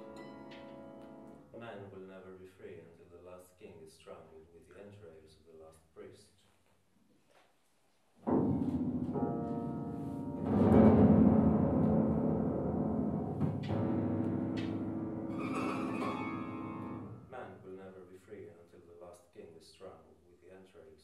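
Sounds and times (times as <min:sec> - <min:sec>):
piano strings ringing low: 0:08.2 - 0:17.5.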